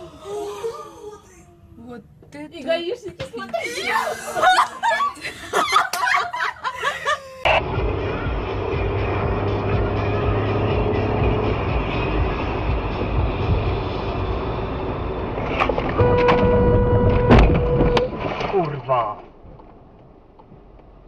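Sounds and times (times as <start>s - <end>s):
people laughing: 3.3s - 7.5s
car driving on highway: 7.5s - 18.0s, 19.3s - 21.0s
low hum: 7.5s - 21.0s.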